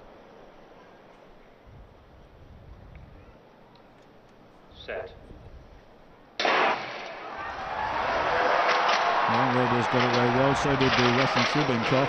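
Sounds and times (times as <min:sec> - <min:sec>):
starting gun shot: 0:06.4 - 0:07.3
stadium crowd roaring: 0:06.5 - 0:12.0.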